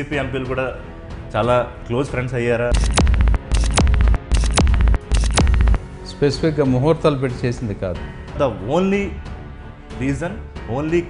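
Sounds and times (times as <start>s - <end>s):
deep bass throbs: 2.7s - 5.8s.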